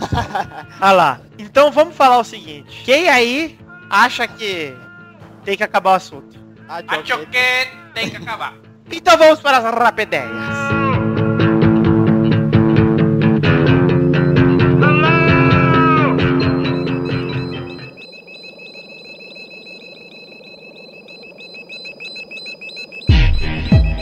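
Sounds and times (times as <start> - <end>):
rock music jingle: 10.7 - 17.8, 23.1 - 24.0
quiet held high tone: 14.0 - 24.0.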